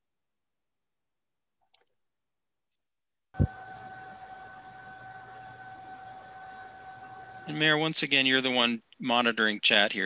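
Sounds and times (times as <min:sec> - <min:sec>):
low hum: 0:03.4 - 0:08.5
high whine from microphone: 0:03.4 - 0:09.8.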